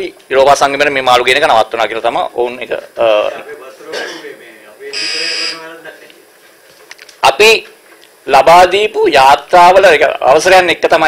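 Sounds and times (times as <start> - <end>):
short electronic buzz: 5.0 - 5.6.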